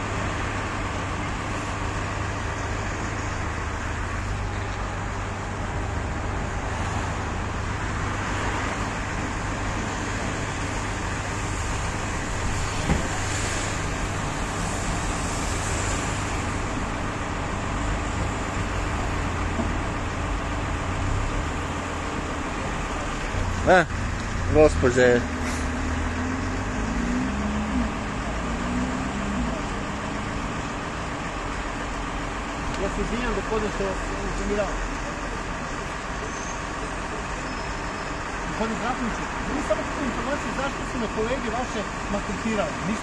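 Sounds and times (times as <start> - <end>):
car engines idling: 0.0 - 43.0
city street traffic: 0.0 - 43.0.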